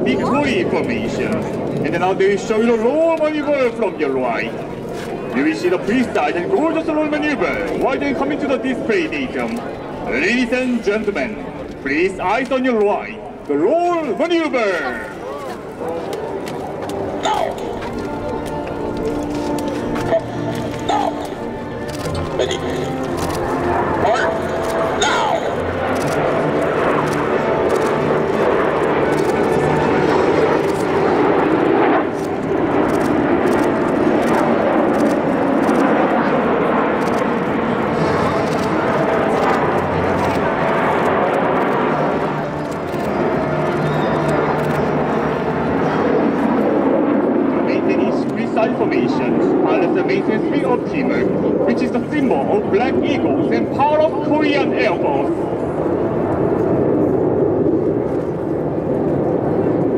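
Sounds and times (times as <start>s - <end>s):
jets flying overhead: 0.0s - 59.9s
voices: 0.1s - 31.4s.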